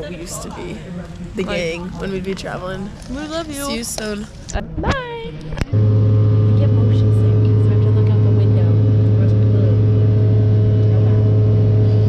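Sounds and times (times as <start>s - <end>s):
airliner cabin drone: 0.0s - 12.0s.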